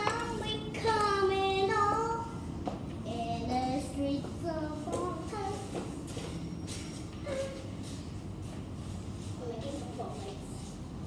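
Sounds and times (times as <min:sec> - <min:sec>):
girl singing wavering notes: 0:00.0 - 0:02.4, 0:03.0 - 0:06.2.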